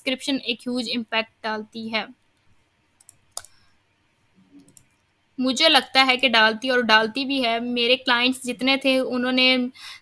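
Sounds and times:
computer mouse clicks: 0:02.2 - 0:03.7, 0:04.6 - 0:05.1.

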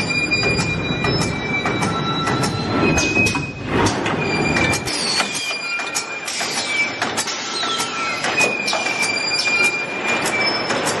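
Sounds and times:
high-pitched machine squeal: 0:00.0 - 0:11.0.

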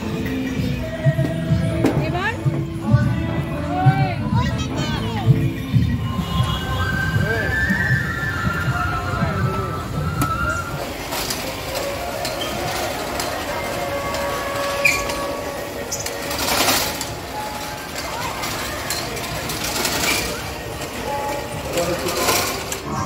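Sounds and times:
crowd voices: 0:00.0 - 0:23.0
mechanical rattle of rides: 0:00.0 - 0:23.0.

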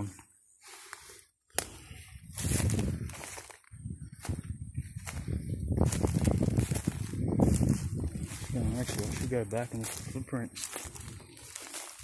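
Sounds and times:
brush rustling against legs: 0:00.0 - 0:12.0
footsteps through dry grass: 0:00.0 - 0:12.0.

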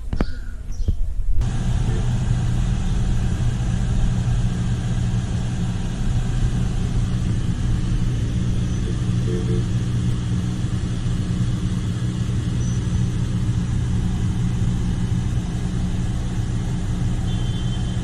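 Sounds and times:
car engine and road noise: 0:01.3 - 0:18.0.

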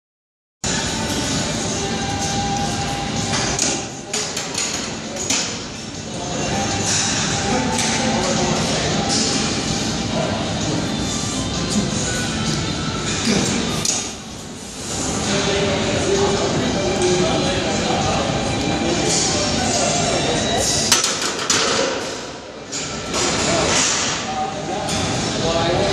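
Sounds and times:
hubbub of voices: 0:00.7 - 0:25.9.

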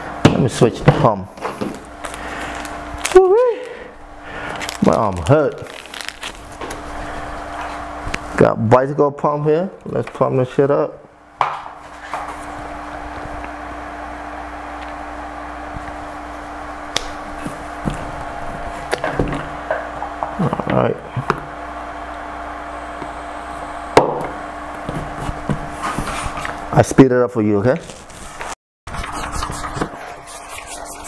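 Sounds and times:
steady hum: 0:00.0 - 0:31.0.

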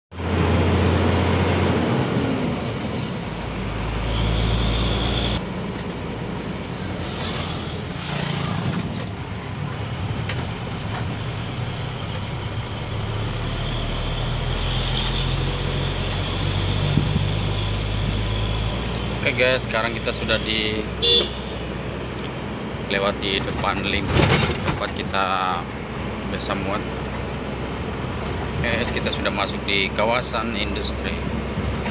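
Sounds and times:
tyre road noise: 0:00.1 - 0:31.9
truck engine running: 0:00.2 - 0:20.5.

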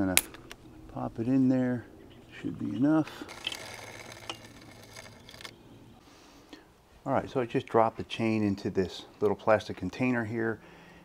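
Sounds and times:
chain tool metallic clicks: 0:00.0 - 0:00.6.

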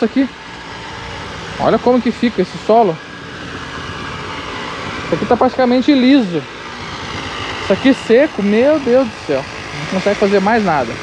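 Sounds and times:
machinery engine hum: 0:00.0 - 0:11.0.

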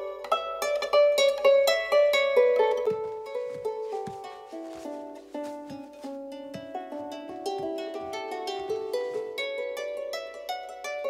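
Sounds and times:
harp melody: 0:00.0 - 0:11.0.

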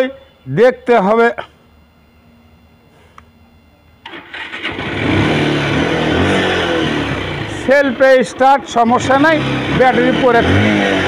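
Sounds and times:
motorcycle engine starting and revving: 0:04.0 - 0:11.0.

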